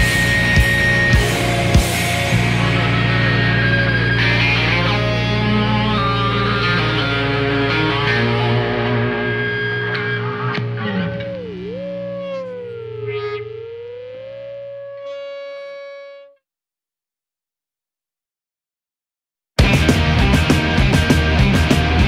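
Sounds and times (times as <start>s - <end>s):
distorted electric guitar rock: 0.0s - 16.3s, 19.6s - 22.0s.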